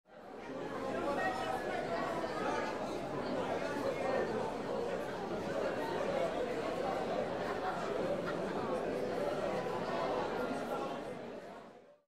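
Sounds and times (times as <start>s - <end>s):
babble of voices chattering: 0.1s - 12.0s.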